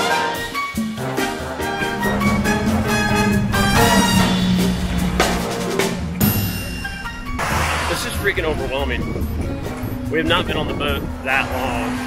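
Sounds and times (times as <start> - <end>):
background music with drum beat: 0.0 - 11.8.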